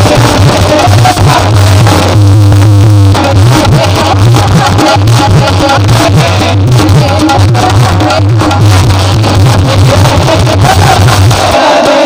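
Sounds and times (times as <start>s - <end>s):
person singing devotional song: 0.0s - 2.2s, 3.1s - 12.0s
bass beat: 0.0s - 11.6s
keyboard: 0.0s - 12.0s
tabla: 0.0s - 12.0s.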